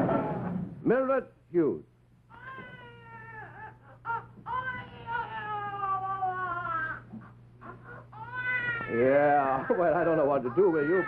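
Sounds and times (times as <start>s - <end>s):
steady low hum: 0.0s - 11.0s
baby crying: 2.3s - 11.0s.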